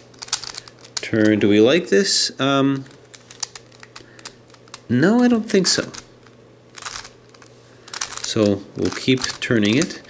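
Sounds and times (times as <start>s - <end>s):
twisty puzzle clicking: 0.1s - 1.4s, 2.7s - 6.1s, 6.7s - 10.0s.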